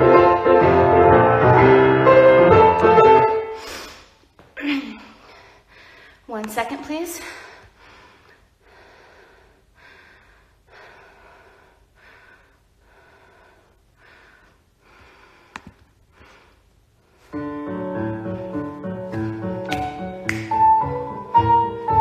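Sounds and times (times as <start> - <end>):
piano music: 0.0 - 3.7, 17.3 - 22.0
person breathing: 3.5 - 6.3, 7.2 - 17.4.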